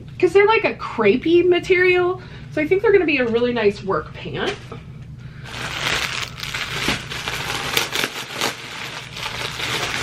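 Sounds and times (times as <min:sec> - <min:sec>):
plastic bag crinkling: 0:05.4 - 0:10.0.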